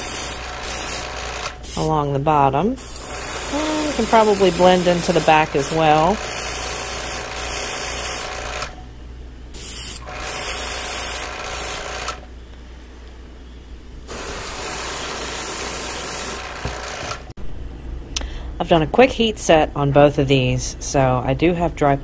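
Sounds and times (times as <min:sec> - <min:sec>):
steady low hum: 0:00.0 - 0:14.2, 0:17.4 - 0:22.0
airbrush spraying hiss: 0:02.8 - 0:08.2, 0:09.6 - 0:11.8.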